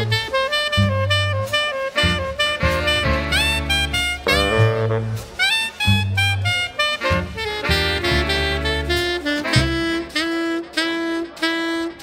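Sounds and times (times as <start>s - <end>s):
saxophone held notes: 0.0s - 12.0s.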